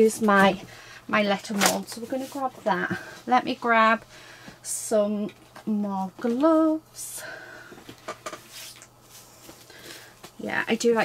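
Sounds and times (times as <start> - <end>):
soft rustles of gloves: 1.6 - 3.2, 8.4 - 10.4.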